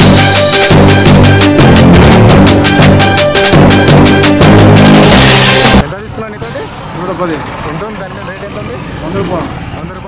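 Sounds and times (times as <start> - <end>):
news theme music: 0.0 - 5.9
vehicle engines running: 0.0 - 10.0.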